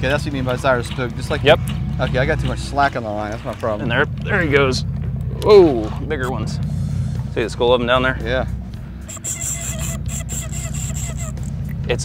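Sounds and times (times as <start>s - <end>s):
boat engine idling: 0.0s - 12.0s
fishing reel whirring and ticking: 9.1s - 11.7s.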